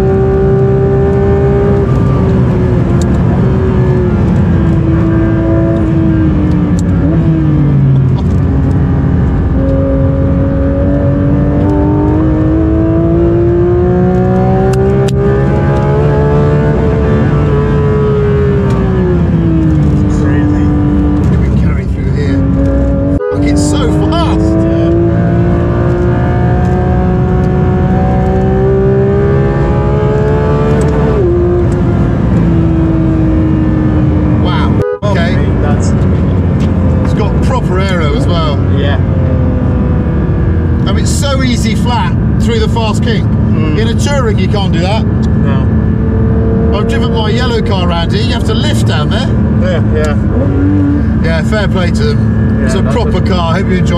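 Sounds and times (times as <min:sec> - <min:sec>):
car engine revving at full throttle: 0:00.0 - 0:53.9.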